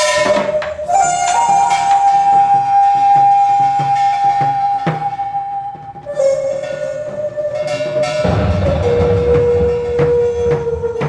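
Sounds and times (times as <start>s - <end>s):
long held high note: 0.0s - 11.0s
barrel drums beaten with sticks: 7.7s - 11.0s.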